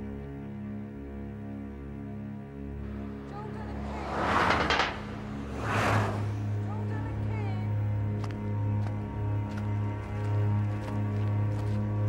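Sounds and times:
rushing whoosh: 2.8 - 6.8.

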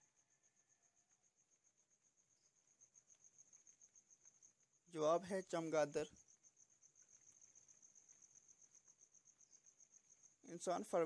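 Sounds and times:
cricket trilling: 0.0 - 11.0.

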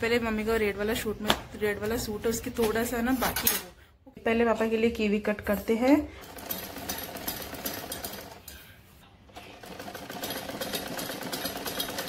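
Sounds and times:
sewing machine stitching: 6.2 - 8.6, 9.4 - 12.0.

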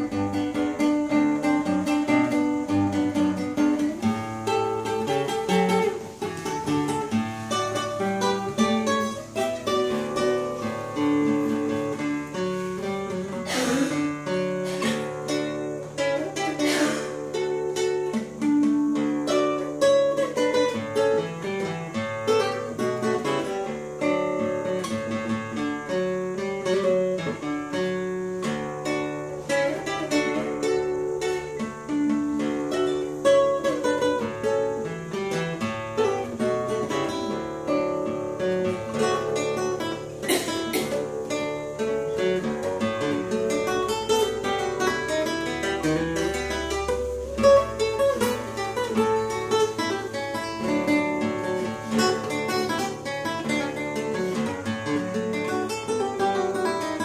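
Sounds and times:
classical guitar fingerstyle: 0.0 - 57.0.

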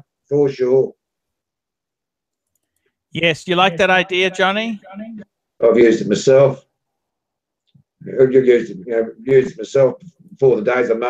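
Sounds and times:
faint clicks: 2.3 - 3.0.

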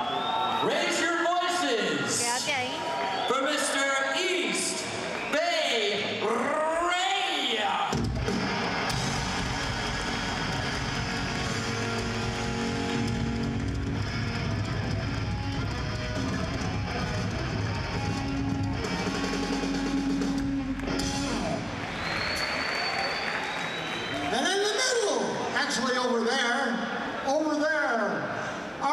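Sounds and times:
crowd noise: 0.0 - 28.9
live rock band playing: 7.9 - 21.8.

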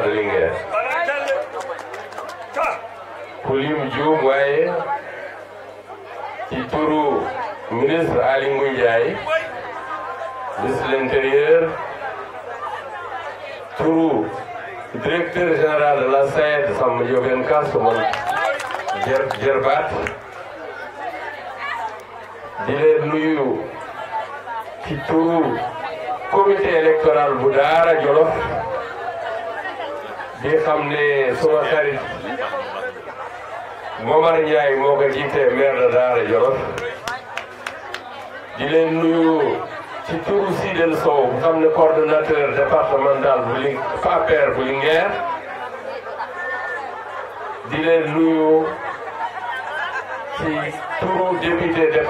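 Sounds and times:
man speaking into a microphone: 0.0 - 1.4, 2.6 - 5.0, 6.5 - 9.6, 10.6 - 11.9, 13.8 - 18.2, 18.9 - 20.2, 22.6 - 23.8, 24.8 - 28.8, 30.4 - 32.5, 34.0 - 37.0, 38.6 - 45.3, 47.6 - 48.8, 50.4 - 52.0
background chatter: 0.0 - 52.0.

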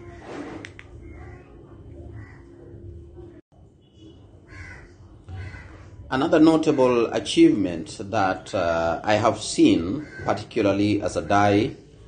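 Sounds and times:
harsh caw-like bird call: 2.1 - 2.7, 4.5 - 6.0, 9.8 - 10.5.

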